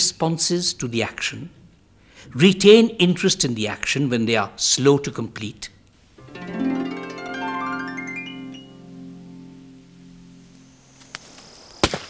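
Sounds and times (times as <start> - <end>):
sustained music notes: 6.2 - 11.5
brush fire crackling: 9.6 - 12.0
loud sharp pop: 11.8 - 12.0.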